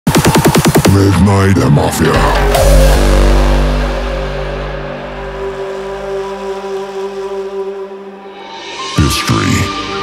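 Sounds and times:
deep bass: 0:00.8 - 0:08.3
sustained synth chord: 0:02.2 - 0:08.8.

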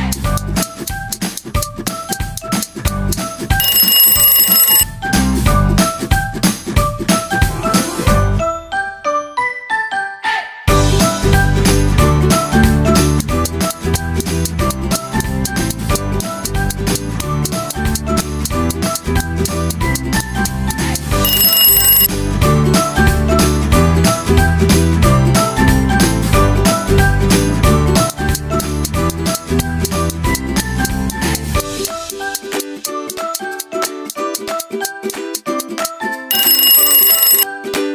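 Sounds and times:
alarm clock bell ringing: 0:03.6 - 0:04.8, 0:21.3 - 0:22.1, 0:36.3 - 0:37.4.

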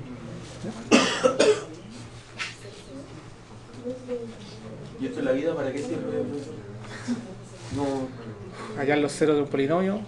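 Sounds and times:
man coughing: 0:00.9 - 0:01.7.

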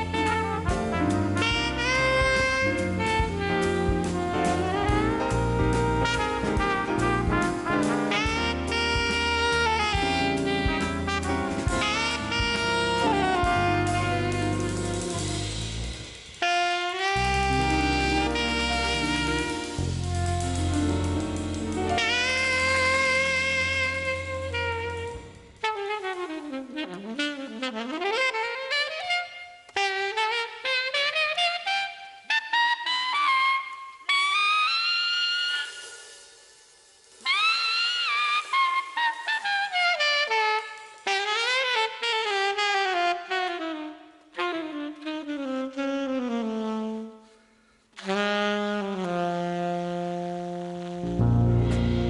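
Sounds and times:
alto saxophone playing jazz: 0:00.0 - 0:36.2, 0:37.2 - 0:52.0.

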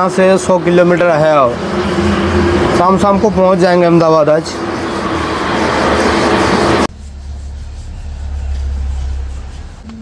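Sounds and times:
loud rushing road noise: 0:00.0 - 0:07.0.

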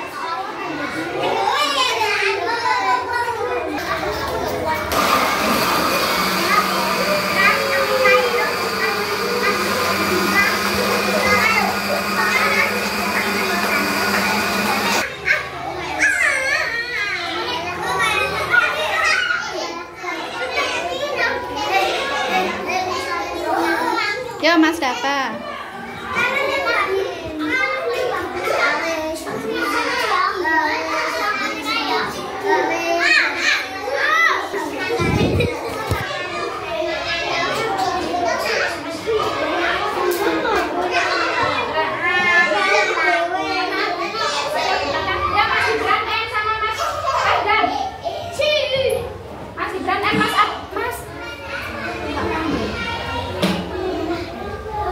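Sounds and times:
children talking and shouting: 0:00.0 - 0:54.9
blender running: 0:04.9 - 0:15.1.

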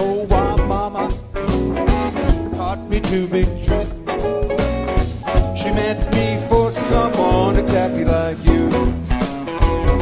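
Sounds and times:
man singing: 0:00.0 - 0:04.1, 0:05.3 - 0:09.2
bass: 0:00.0 - 0:10.0
drums: 0:00.0 - 0:10.0
electric guitars: 0:00.0 - 0:10.0.

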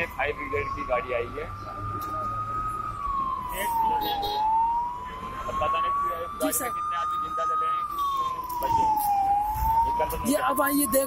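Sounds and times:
fire engine siren wailing: 0:00.0 - 0:11.0.

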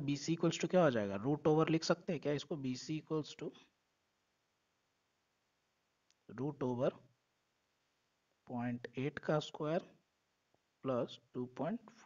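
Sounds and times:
faint background hiss: 0:00.0 - 0:12.0.

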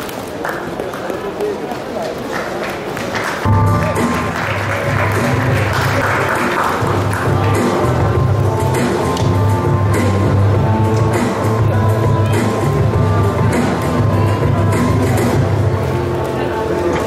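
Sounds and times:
audience applause: 0:00.2 - 0:08.1
music with steady bass line: 0:03.5 - 0:16.2.

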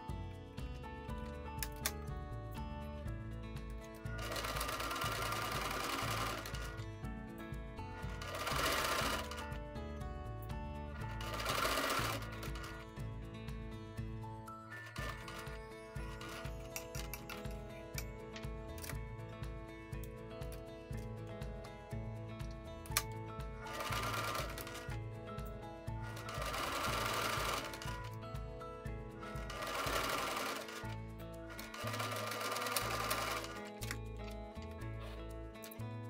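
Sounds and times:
background music: 0:00.0 - 0:36.0
sewing machine stitching: 0:04.0 - 0:06.8, 0:07.9 - 0:09.6, 0:11.0 - 0:12.9, 0:14.8 - 0:17.6, 0:23.6 - 0:25.0, 0:26.0 - 0:28.2, 0:29.2 - 0:34.1.

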